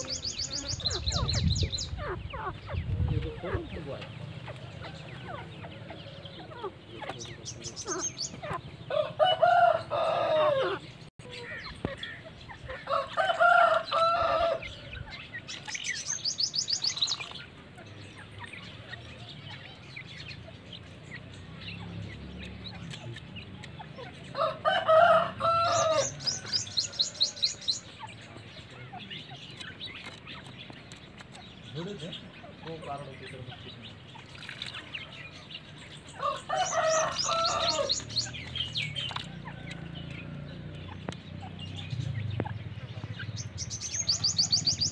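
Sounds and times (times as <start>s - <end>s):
harsh bird call: 33.6s - 39.6s.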